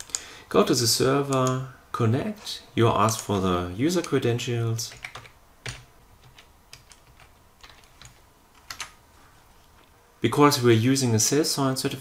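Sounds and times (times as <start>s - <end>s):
keyboard keys tapping: 4.9s - 9.0s.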